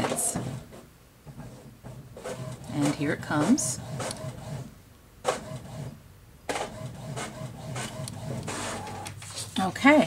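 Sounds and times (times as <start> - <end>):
inkjet printer printing: 1.4 - 4.7, 5.3 - 9.2.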